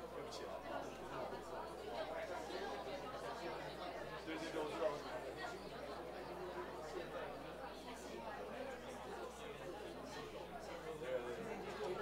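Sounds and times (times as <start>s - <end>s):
indistinct chatter of many people: 0.0s - 12.0s.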